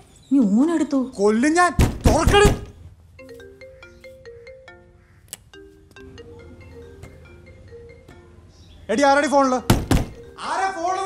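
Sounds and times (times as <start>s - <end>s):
marimba phone ringtone: 3.2s - 11.0s.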